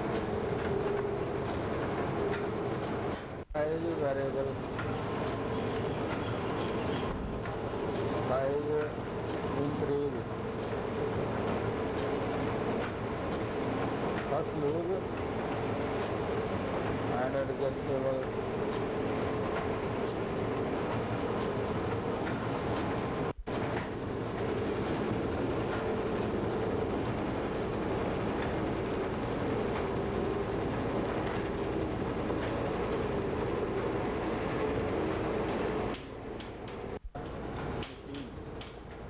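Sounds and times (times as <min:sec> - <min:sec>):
steady machine hum: 0:00.0 - 0:39.0.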